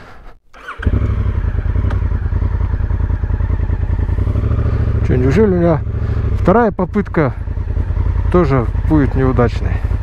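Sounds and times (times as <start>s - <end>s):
motorcycle engine starting and idling: 0.5s - 10.0s.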